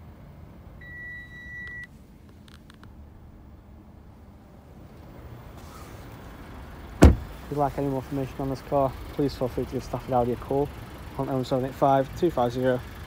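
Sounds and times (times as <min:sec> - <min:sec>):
low steady rumble: 0:00.0 - 0:13.0
car warning chime beep: 0:00.8 - 0:01.9.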